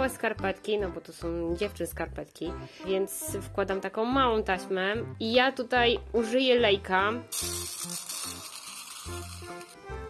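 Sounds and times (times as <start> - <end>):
background music: 0.0 - 10.0
rice pouring into funnel: 7.3 - 9.8.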